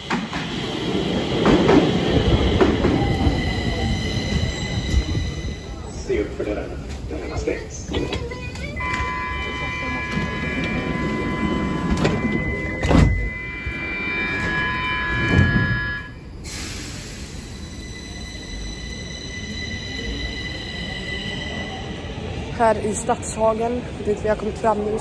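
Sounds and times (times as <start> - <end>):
train whine pulling out: 0.0 - 22.7
train electrical hum: 0.0 - 23.2.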